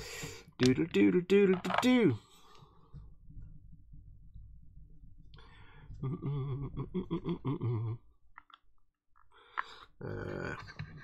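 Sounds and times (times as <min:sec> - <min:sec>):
man humming: 0:06.0 - 0:08.1.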